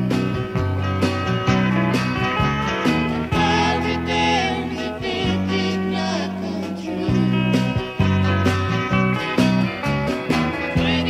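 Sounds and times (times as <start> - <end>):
country band playing live: 0.0 - 11.0.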